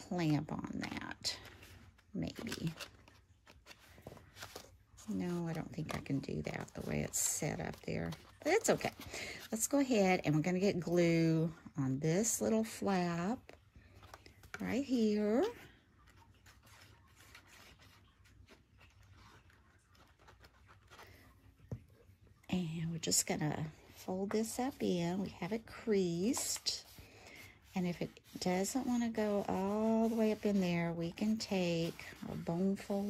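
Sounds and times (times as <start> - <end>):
paper rustling: 0.0 - 9.8, 13.5 - 22.1, 23.6 - 33.0
paper rustling and tapping: 0.2 - 9.6
glue bottle scratching on paper: 27.8 - 33.0.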